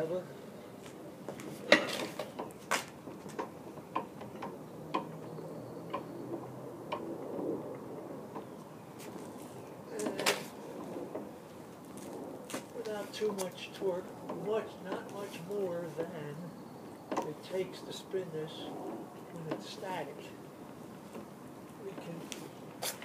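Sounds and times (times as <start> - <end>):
gyro wheel clicks and knocks: 1.7 - 8.6
person speaking: 9.9 - 10.5, 12.7 - 16.6, 17.2 - 20.4, 21.8 - 22.5.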